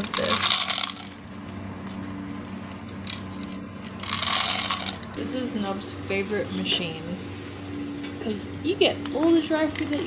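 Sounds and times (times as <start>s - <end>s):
pet feeder motor hum: 0.0s - 10.0s.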